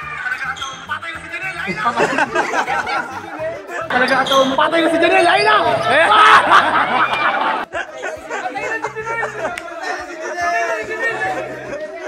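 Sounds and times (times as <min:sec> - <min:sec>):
crowd noise: 0:00.0 - 0:12.0
voices shouting: 0:00.0 - 0:12.0.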